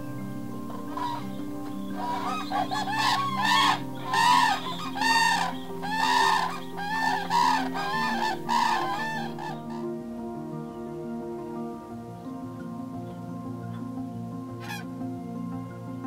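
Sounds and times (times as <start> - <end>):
cranes calling: 0.7 - 9.9.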